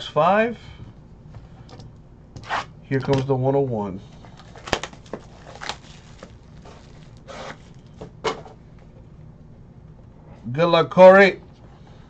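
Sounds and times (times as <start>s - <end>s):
soft rustling: 4.0s - 7.8s
plastic shrink wrap crinkling: 4.2s - 7.9s.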